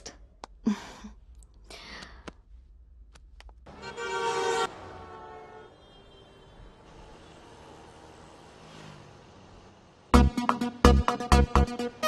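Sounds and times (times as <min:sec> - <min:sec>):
faint road traffic: 0:03.6 - 0:10.2.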